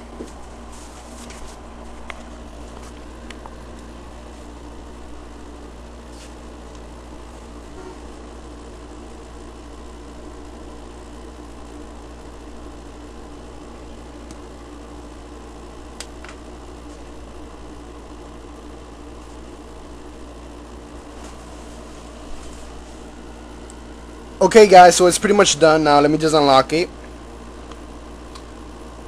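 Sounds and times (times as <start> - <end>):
low background hum: 0.0 - 29.0.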